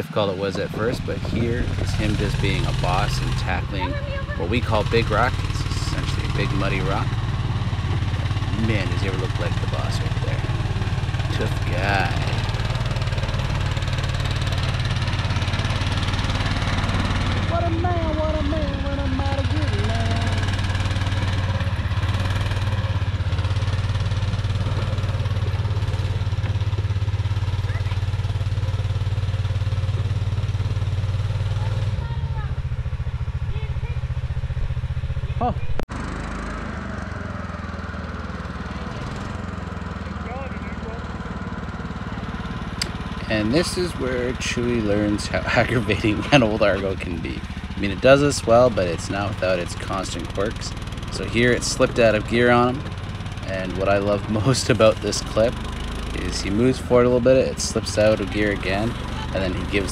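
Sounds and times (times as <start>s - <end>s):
vehicle engine running: 0.0s - 59.9s.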